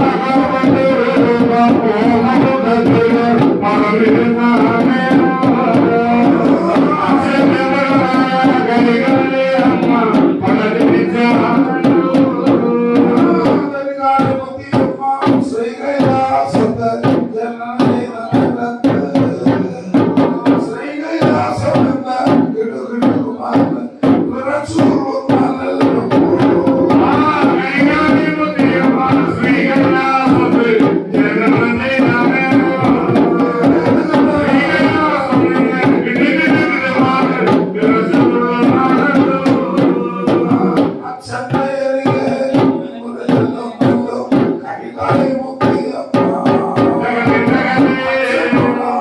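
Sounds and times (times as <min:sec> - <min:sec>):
drum strokes: 0:00.0 - 0:49.0
voices singing ritual song: 0:00.0 - 0:49.0.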